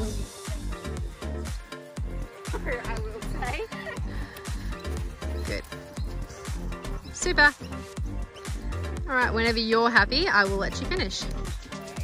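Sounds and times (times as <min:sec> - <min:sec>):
dance music with steady beat: 0:00.0 - 0:12.0.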